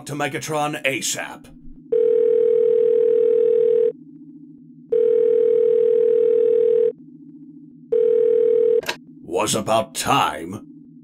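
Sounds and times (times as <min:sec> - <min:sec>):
telephone ringback tone: 0:01.9 - 0:04.0, 0:04.9 - 0:07.0, 0:07.9 - 0:09.0.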